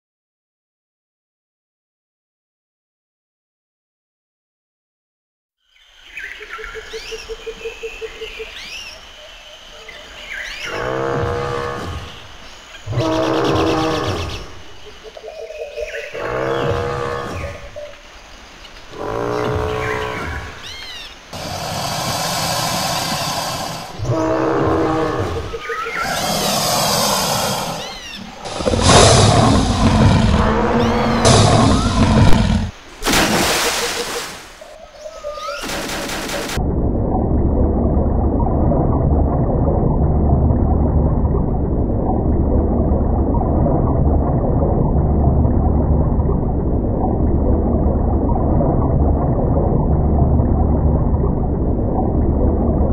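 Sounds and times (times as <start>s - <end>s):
dinosaur roars: 12.9s - 14.6s, 16.2s - 17.7s, 21.4s - 32.8s.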